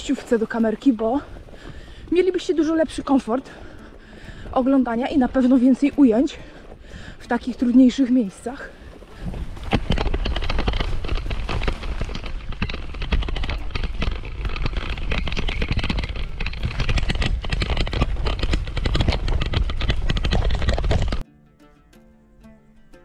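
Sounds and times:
bike rattling over rough ground: 0:00.0 - 0:21.2.

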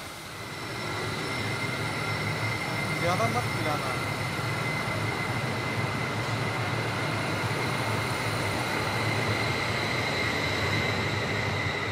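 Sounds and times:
train wheels rumbling on rail: 0:00.0 - 0:11.9.

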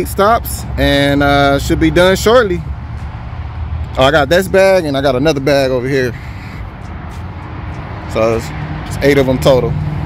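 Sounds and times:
low vehicle rumble: 0:00.0 - 0:10.0.

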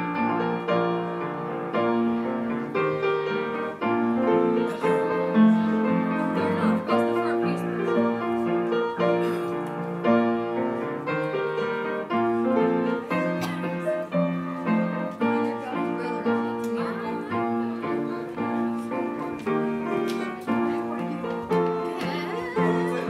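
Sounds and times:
piano playing hymn chords: 0:00.0 - 0:23.0.

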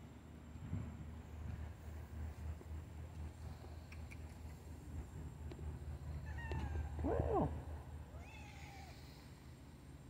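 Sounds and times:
cat meowing: 0:06.2 - 0:07.5, 0:08.1 - 0:09.0.

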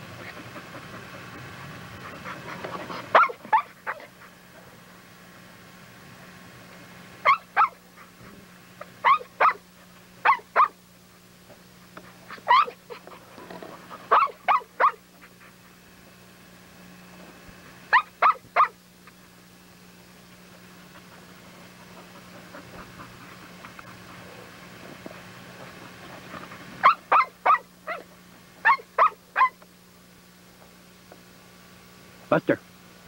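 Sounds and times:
steady low hum: 0:00.0 - 0:33.0
dog barking sharply: 0:03.1 - 0:04.0, 0:09.0 - 0:09.6.

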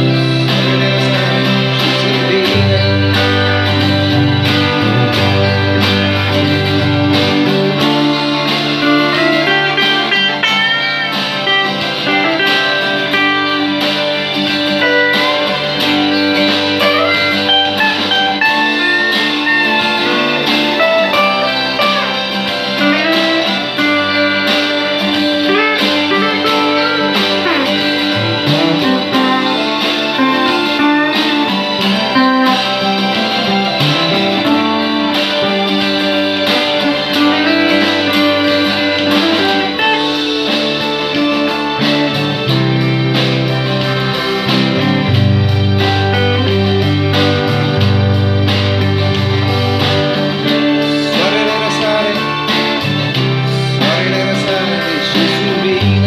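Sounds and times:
bluesy electric guitar melody: 0:00.0 - 0:56.0
sustained chord accompaniment: 0:00.0 - 0:56.0.

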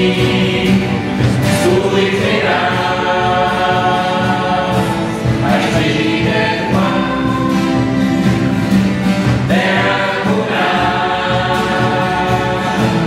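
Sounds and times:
acoustic guitar: 0:00.0 - 0:13.0
double bass: 0:00.0 - 0:13.0
men and women singing in harmony: 0:00.0 - 0:13.0.

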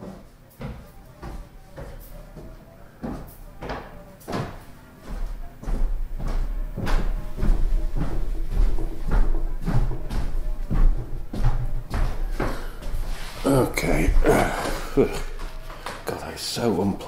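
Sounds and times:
low rumble: 0:05.8 - 0:13.4.

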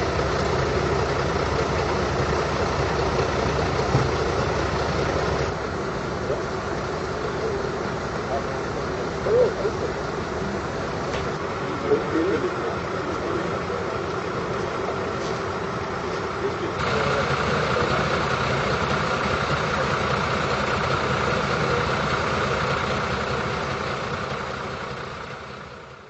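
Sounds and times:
diesel engine idling: 0:00.0 - 0:26.0
faint voices: 0:05.5 - 0:23.6.

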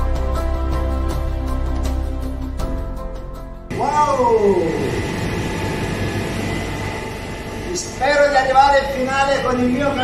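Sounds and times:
machinery hum and hiss: 0:03.7 - 0:10.0.

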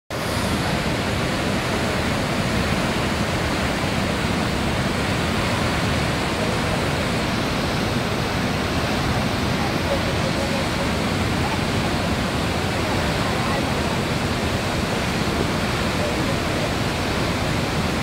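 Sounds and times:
waterfall rushing: 0:00.1 - 0:18.0.

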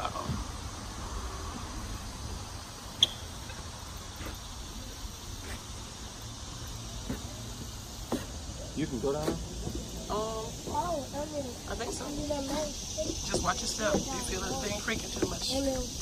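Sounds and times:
faint high hiss: 0:00.0 - 0:16.0.

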